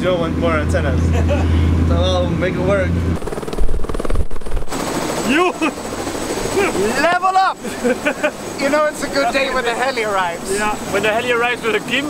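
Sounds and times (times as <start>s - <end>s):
helicopter rotor chopping: 0.0s - 12.0s.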